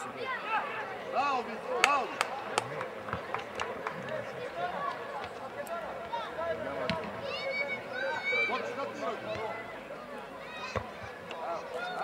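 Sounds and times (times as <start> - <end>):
people shouting and calling out: 0.0 - 2.6, 4.0 - 12.0.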